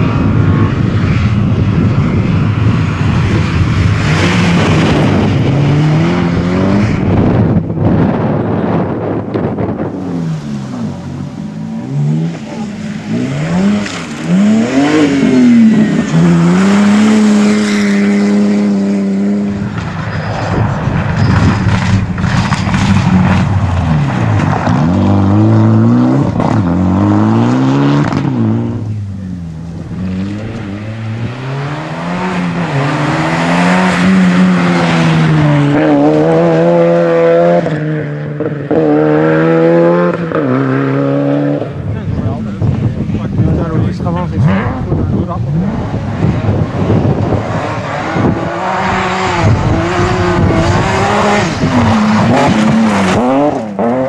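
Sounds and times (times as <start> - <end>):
rally car engines revving: 0.0 - 54.0.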